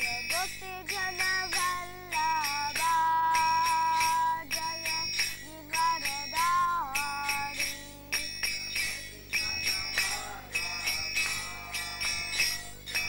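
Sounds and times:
boy singing a chant: 0.0 - 13.0
small hand cymbals ringing: 0.0 - 13.0.

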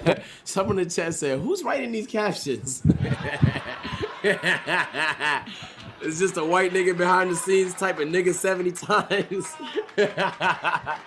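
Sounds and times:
man laughing hard: 2.8 - 6.0, 8.9 - 11.0.

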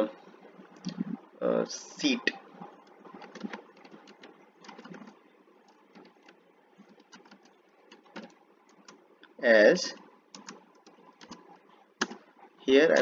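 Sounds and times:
keyboard keystroke clicks: 12.0 - 12.2.

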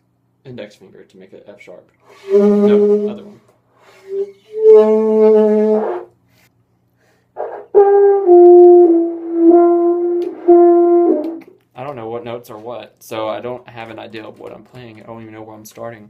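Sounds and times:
alto saxophone notes: 2.1 - 3.4, 4.0 - 6.1, 7.4 - 11.5
french horn low notes: 2.2 - 3.4, 7.4 - 11.5.

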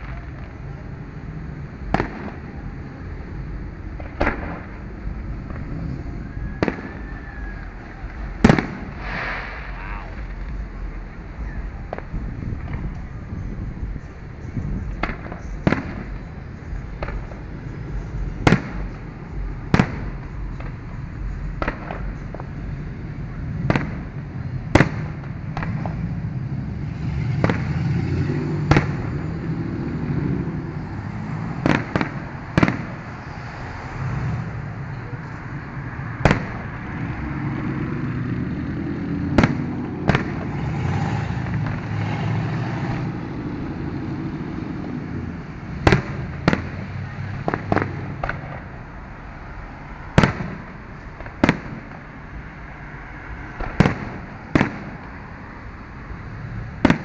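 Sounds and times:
low background rumble: 0.0 - 40.7
fireworks shells bursting: 7.9 - 10.6.

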